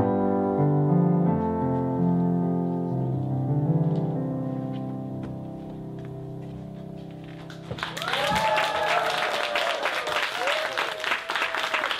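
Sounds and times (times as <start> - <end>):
electric keyboard chord: 0.0 - 7.7
audience applause: 7.7 - 11.9
voices cheering: 8.0 - 11.9.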